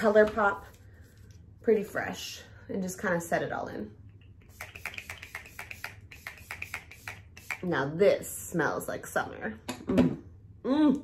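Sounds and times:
spray pump spritzes: 4.5s - 7.6s.

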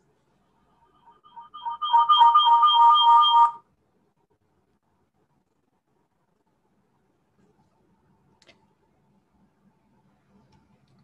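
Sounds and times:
short electronic tune: 1.1s - 3.6s.

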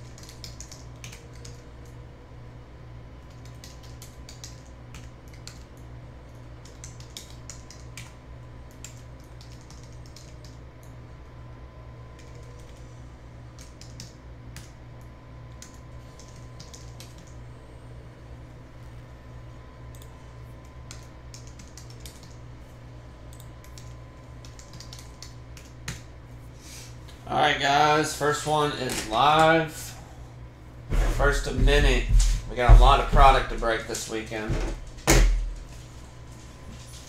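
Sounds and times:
computer keyboard typing: 0.0s - 1.6s, 3.3s - 5.7s, 6.6s - 10.6s, 13.6s - 14.7s, 15.6s - 17.4s, 20.9s - 22.4s, 23.3s - 26.0s
low electrical hum: 0.0s - 37.0s.

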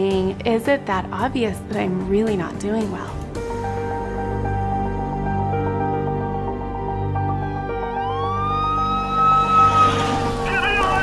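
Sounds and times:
emergency vehicle siren wailing: 7.5s - 11.0s.

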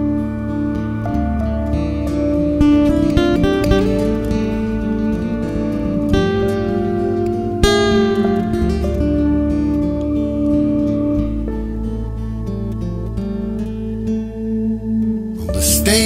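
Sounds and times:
acoustic guitar plucking and strumming: 0.0s - 16.0s
steady held notes: 0.0s - 16.0s.

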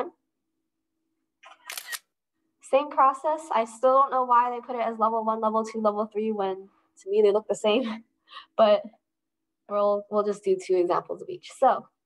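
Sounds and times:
camera shutter click: 1.5s - 2.1s.

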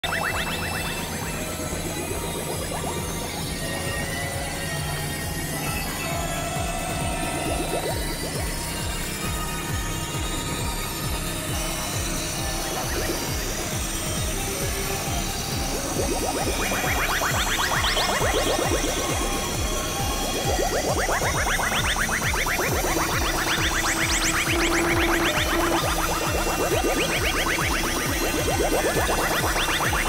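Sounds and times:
electronic noise music drone: 0.0s - 30.0s
rising synth sweeps: 0.0s - 30.0s.

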